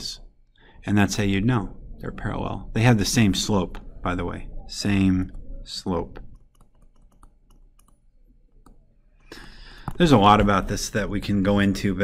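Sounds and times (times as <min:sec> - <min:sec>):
stylus tapping on touchscreen: 0:06.2 - 0:08.0.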